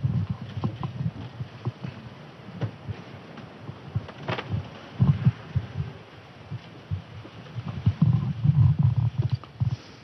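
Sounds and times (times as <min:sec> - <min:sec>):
low thumps and rumbling: 0:00.0 - 0:09.8.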